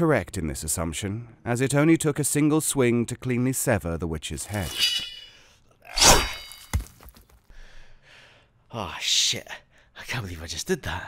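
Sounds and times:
metal blade chop with ring: 4.5s - 5.4s.

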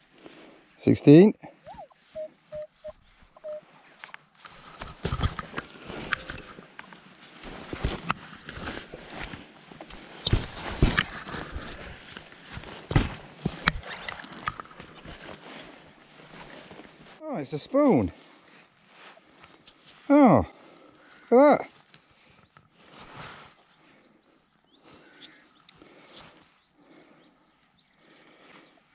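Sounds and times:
metal detector beep: 1.6s - 3.7s, 6.0s - 7.0s.

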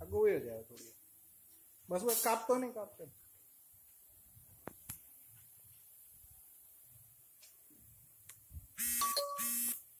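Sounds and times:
electric buzzer buzzes: 8.8s - 10.0s.

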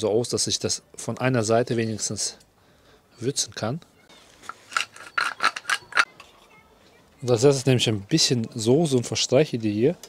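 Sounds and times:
spice mill grinding: 4.5s - 6.1s.

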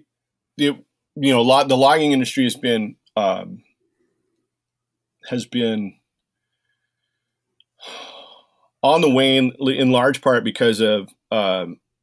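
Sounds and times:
man speaking: 0.6s - 3.6s, 5.2s - 6.0s, 8.8s - 11.8s
man breathing in: 6.4s - 8.7s.

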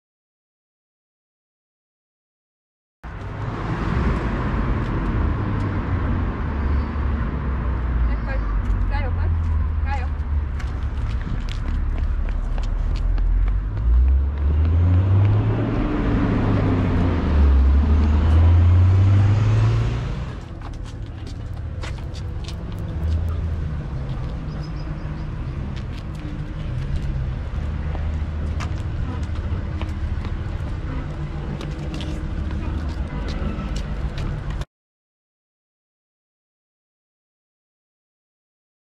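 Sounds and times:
street noise: 3.0s - 34.7s
vehicle engine passing: 3.1s - 8.1s, 9.2s - 34.6s.

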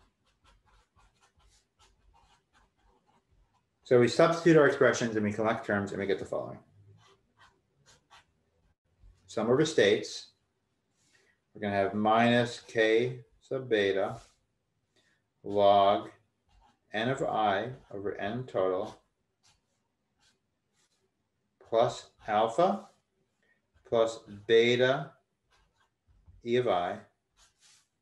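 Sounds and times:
marker scratching on paper: 0.0s - 5.6s, 6.2s - 8.4s, 12.1s - 14.5s, 15.5s - 28.0s.

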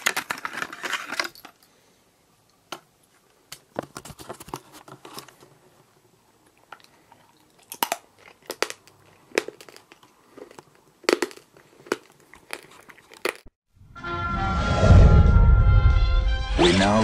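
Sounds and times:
crunching hard candy: 6.6s - 13.5s.

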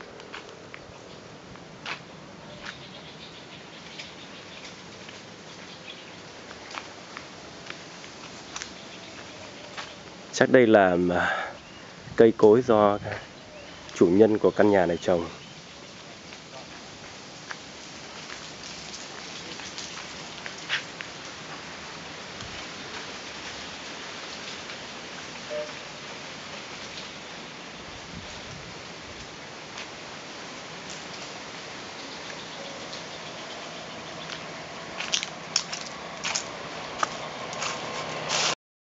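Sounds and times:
steady outdoor hiss: 0.0s - 38.6s.

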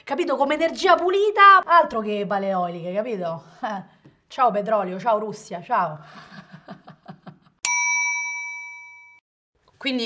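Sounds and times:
bright bell ding: 7.6s - 9.2s.

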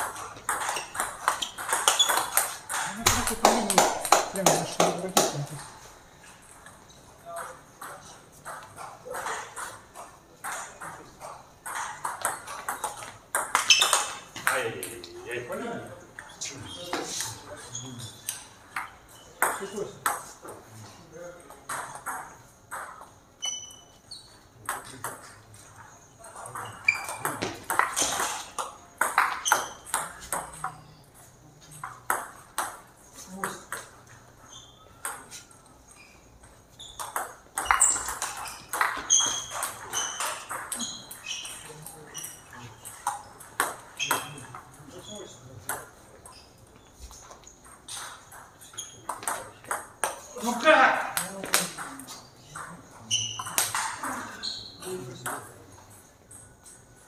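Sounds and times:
voices in a hall: 2.6s - 23.1s.

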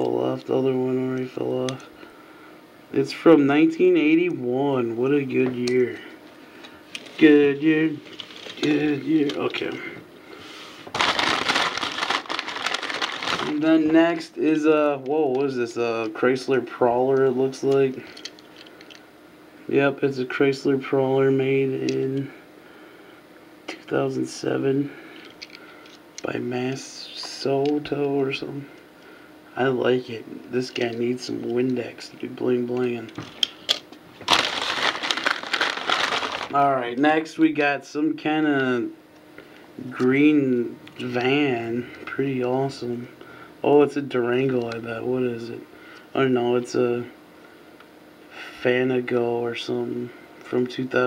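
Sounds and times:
bag rustling and crinkling: 10.9s - 13.6s, 34.2s - 36.6s.

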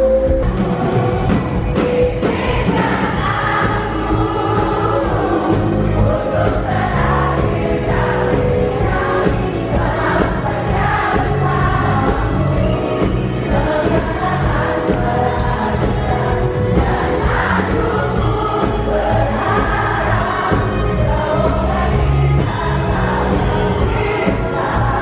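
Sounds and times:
audience singing along: 0.0s - 25.0s
live pop band: 0.0s - 25.0s.

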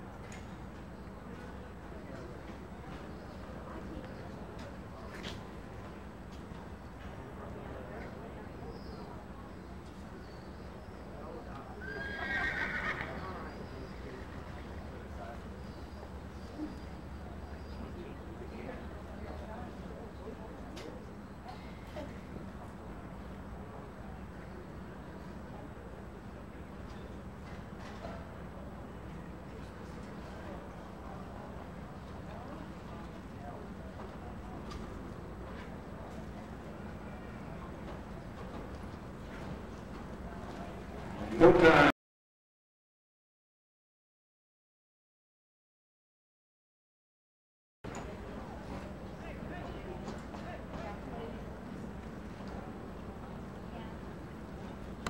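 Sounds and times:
low background hum: 0.0s - 41.9s
horse whinnying: 11.8s - 13.2s.

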